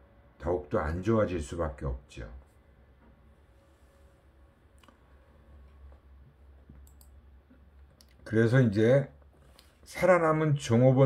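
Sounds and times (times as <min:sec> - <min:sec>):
faint clicks: 0:06.7 - 0:07.2.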